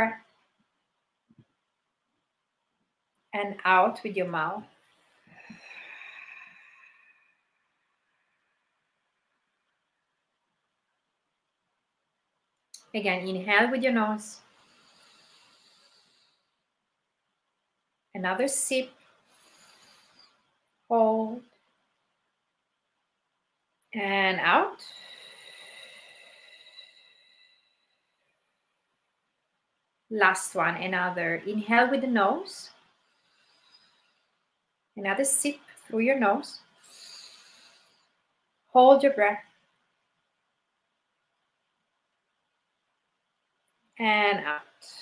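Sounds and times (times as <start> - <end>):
woman breathing out: 5.0 - 7.7, 24.8 - 28.2, 36.8 - 38.2.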